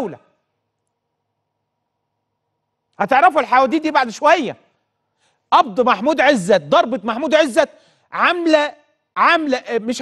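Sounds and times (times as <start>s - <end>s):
man speaking: 3.0s - 4.7s, 5.5s - 10.0s.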